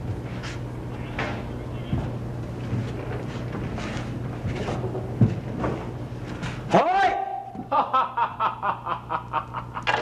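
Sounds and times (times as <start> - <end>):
man laughing: 7.6 - 10.0.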